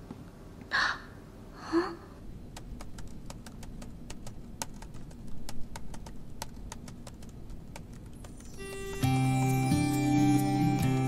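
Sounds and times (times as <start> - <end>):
low room hum: 0.0 - 11.0
keyboard key clicks: 2.5 - 8.5
music: 8.2 - 11.0.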